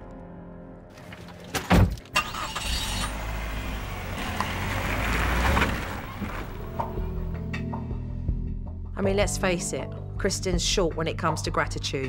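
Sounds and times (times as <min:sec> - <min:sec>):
car door shutting: 0:01.6 - 0:07.1
car pulling away: 0:02.2 - 0:07.4.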